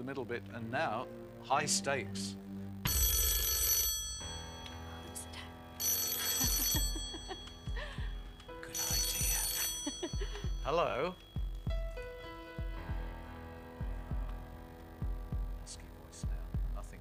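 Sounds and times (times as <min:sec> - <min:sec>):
telephone bell ringing: 0:02.8 - 0:11.5
tense music with pulsing beat: 0:06.4 - 0:17.0.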